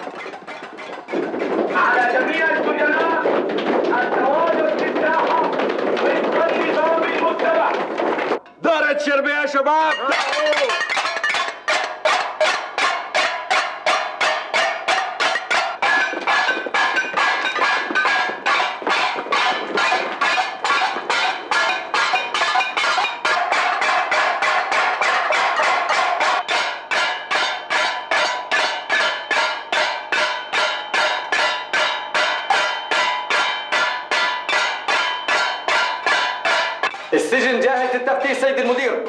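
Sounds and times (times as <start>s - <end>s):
wooden spoons clanging on metal plates: 0.0s - 8.8s, 9.8s - 38.8s.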